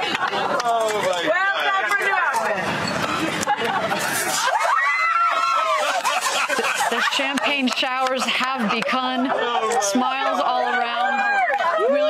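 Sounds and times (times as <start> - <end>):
people talking outdoors: 0.0 - 12.0.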